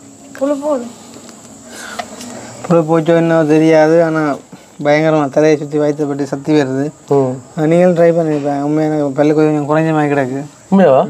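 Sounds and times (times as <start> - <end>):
man talking: 2.7 - 11.0.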